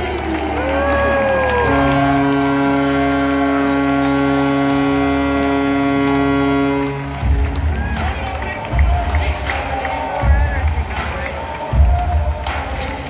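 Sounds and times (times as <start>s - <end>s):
crowd cheering: 0.0s - 13.0s
arena horn blast: 0.8s - 7.4s.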